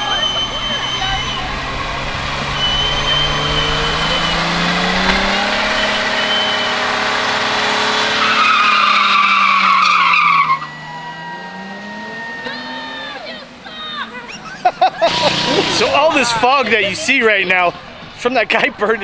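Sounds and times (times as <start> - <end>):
car engine revving: 0.0 - 18.3
tyre squealing on asphalt: 0.0 - 18.3.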